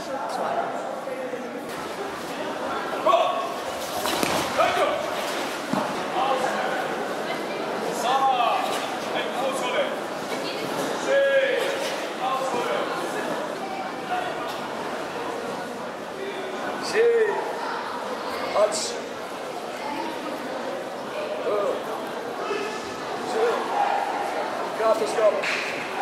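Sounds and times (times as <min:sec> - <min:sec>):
background chatter: 0:00.0 - 0:26.0.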